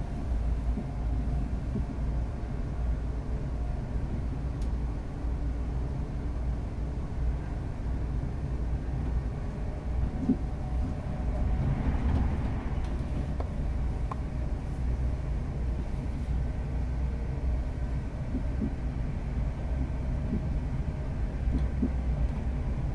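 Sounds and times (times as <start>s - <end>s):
train wheels rumbling on rails: 0.0s - 22.9s.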